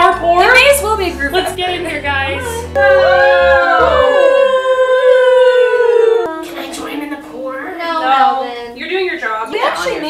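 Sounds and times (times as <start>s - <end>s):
voices holding long note: 0.0s - 6.9s
voices sliding in pitch: 2.2s - 6.6s.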